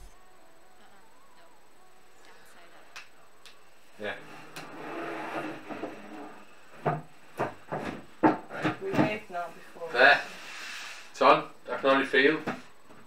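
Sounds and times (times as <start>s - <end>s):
knocks on wooden cabinet: 6.8s - 9.2s.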